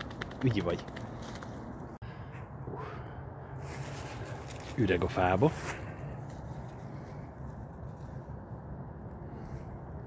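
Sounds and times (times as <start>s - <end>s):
low outdoor rumble: 0.0s - 10.0s.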